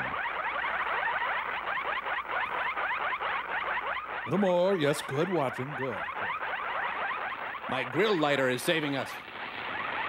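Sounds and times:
rising electronic chirps: 0.0s - 10.0s.

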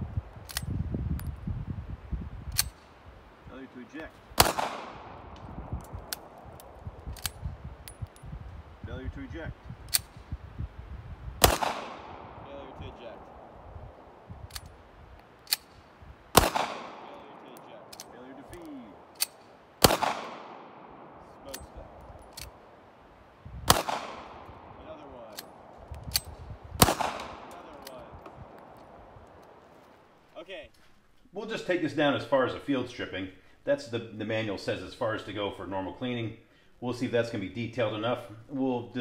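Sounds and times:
light pistol clicks: 0.4s - 1.3s, 2.5s - 2.9s, 4.4s - 8.2s, 14.4s - 20.6s, 21.5s - 22.6s, 25.3s - 29.5s
pistol shots echoing: 4.4s - 6.4s, 11.4s - 14.8s, 15.4s - 22.8s, 23.7s - 29.6s.

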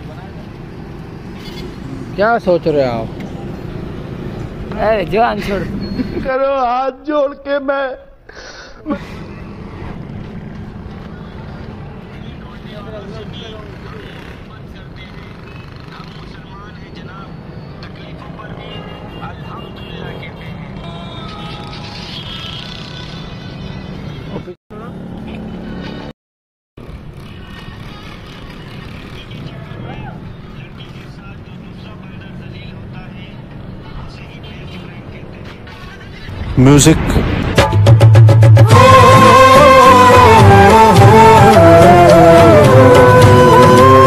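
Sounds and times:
steady outdoor rumble: 8.9s - 17.3s, 26.8s - 44.0s.

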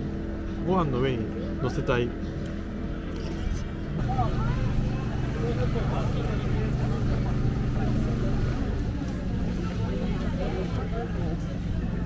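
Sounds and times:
low mechanical hum: 0.0s - 12.0s
faint voices: 0.3s - 12.0s.

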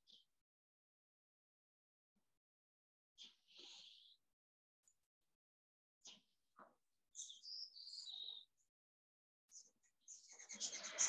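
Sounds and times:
bird singing: 7.2s - 8.6s, 9.5s - 11.0s.

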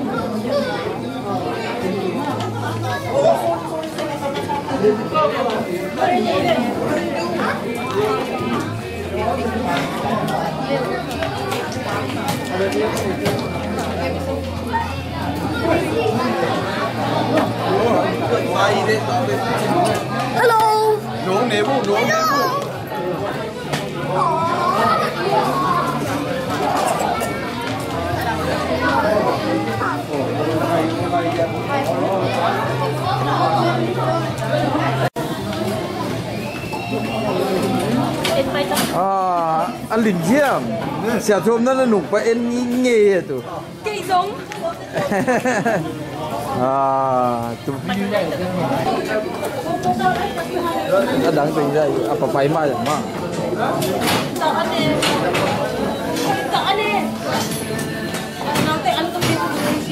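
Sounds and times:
crowd chattering: 0.0s - 59.9s
hubbub of overlapping conversation: 0.0s - 59.9s.

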